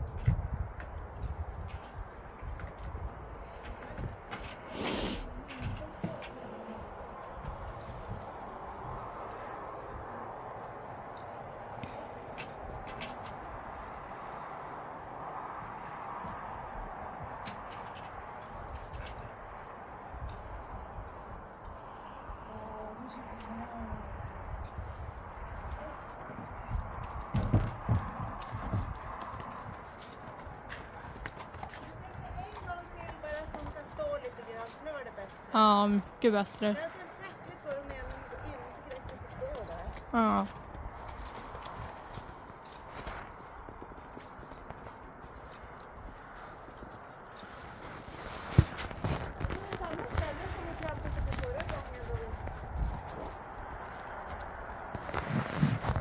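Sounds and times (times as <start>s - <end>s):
horse hooves stamping on ramp: 0.0s - 14.1s, 15.2s - 22.4s, 23.1s - 56.0s.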